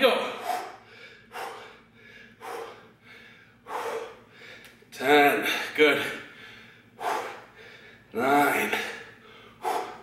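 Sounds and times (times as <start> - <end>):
man breathing hard: 0.2 - 8.1, 8.7 - 10.0.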